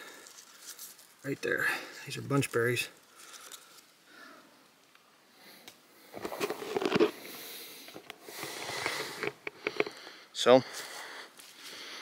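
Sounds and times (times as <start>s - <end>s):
person breathing and sniffing: 5.4s - 12.0s
handling clicks and rustles: 6.1s - 10.1s.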